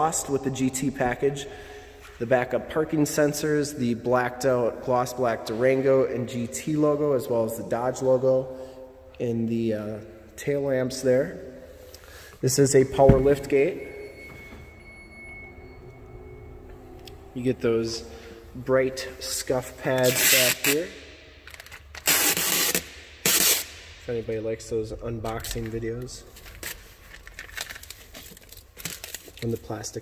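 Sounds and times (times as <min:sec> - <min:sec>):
liftgate motor humming and whining: 0:13.0 - 0:18.7
plastic film crinkling while peeled: 0:26.3 - 0:30.0.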